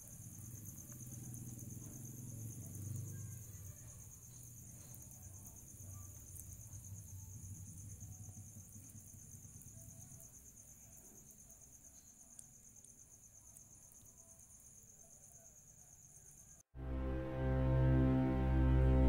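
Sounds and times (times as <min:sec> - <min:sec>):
crickets chirping: 0:00.0 - 0:16.7.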